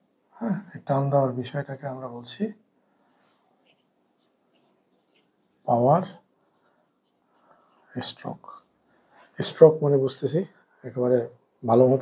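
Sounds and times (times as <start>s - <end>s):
marker pen writing on whiteboard: 3.0s - 9.8s.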